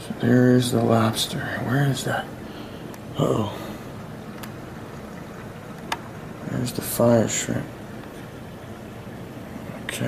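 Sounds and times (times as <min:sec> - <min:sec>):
aquarium pumps humming: 0:00.0 - 0:10.0.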